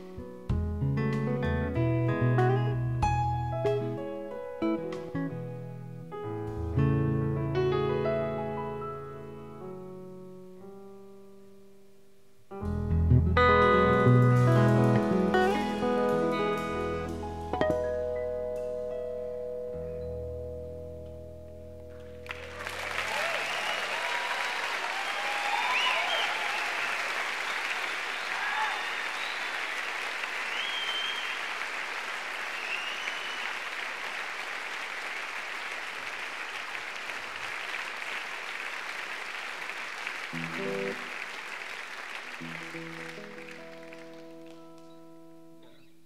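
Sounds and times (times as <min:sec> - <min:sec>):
guitar notes: 0:00.0 - 0:10.1, 0:12.5 - 0:22.5, 0:40.3 - 0:41.1, 0:42.4 - 0:46.0
audience applauding: 0:22.0 - 0:45.0
audience cheers: 0:22.3 - 0:44.1.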